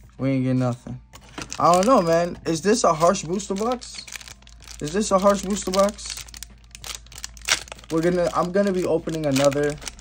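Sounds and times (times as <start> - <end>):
foil wrappers crinkling: 1.2 - 10.0.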